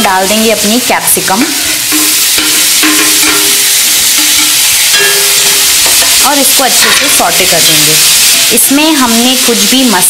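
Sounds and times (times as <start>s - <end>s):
vegetables sizzling in a pan: 0.0s - 10.0s
metal spatula scraping: 1.4s - 8.5s.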